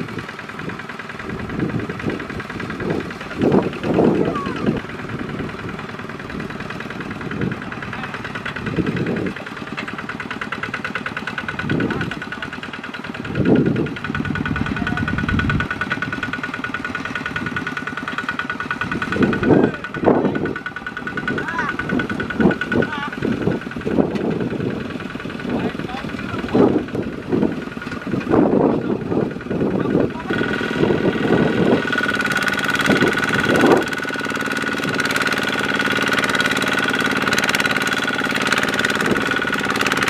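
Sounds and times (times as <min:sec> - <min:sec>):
diesel tractor engine under load: 0:00.0 - 0:40.0.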